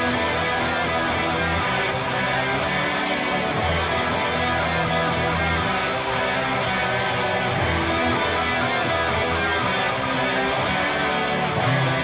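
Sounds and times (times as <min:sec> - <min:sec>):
heavy metal instrumental: 0:00.0 - 0:12.0.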